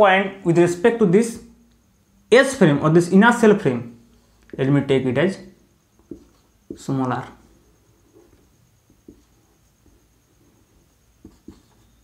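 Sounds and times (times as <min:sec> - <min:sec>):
marker scratching on whiteboard: 0:06.0 - 0:12.0.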